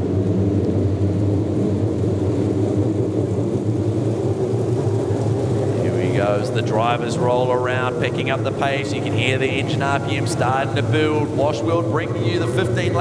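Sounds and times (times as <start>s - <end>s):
race car engines droning: 0.0s - 13.0s.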